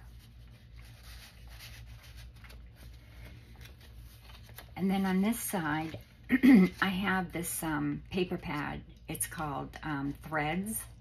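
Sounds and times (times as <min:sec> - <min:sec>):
paper rustling and rubbing: 0:00.0 - 0:07.1
low steady hum: 0:00.0 - 0:11.0.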